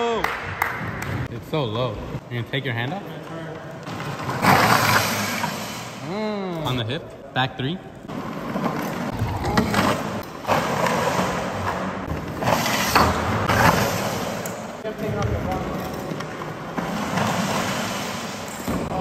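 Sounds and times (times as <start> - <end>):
trike skidding on concrete: 3.8 - 6.0.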